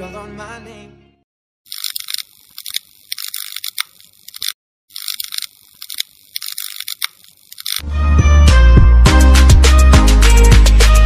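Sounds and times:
high-pitched rattling rhythm: 1.7 - 7.8
loud backing music: 7.9 - 11.0.

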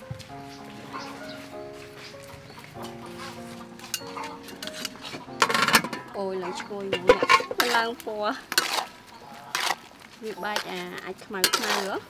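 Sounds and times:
metal spatula scraping a wok: 3.2 - 12.0.

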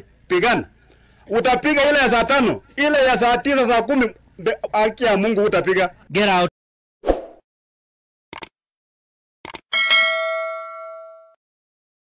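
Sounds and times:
notification bell ding: 9.7 - 11.4.

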